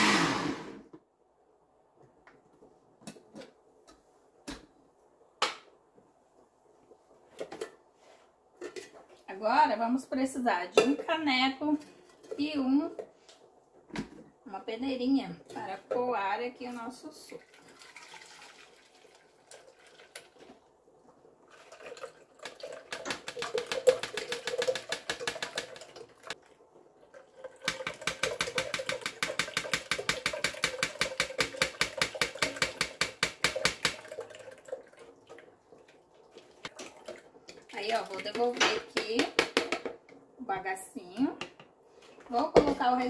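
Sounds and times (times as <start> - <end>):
juice pouring into jug: 17.4 - 20.6, 21.4 - 32.3, 33.5 - 38.1.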